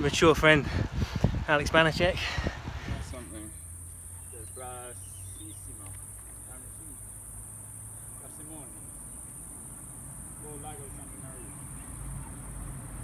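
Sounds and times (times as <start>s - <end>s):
crickets chirping: 1.6s - 13.0s.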